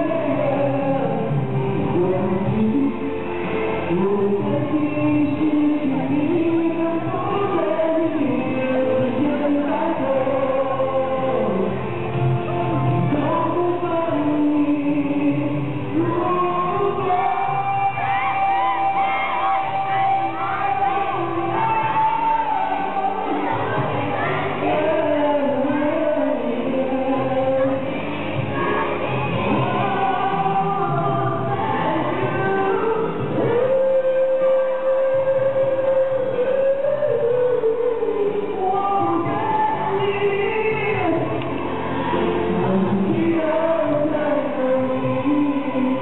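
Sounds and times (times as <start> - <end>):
man singing a slow ballad: 0.0 - 23.5, 29.5 - 46.0
musical accompaniment: 0.0 - 46.0.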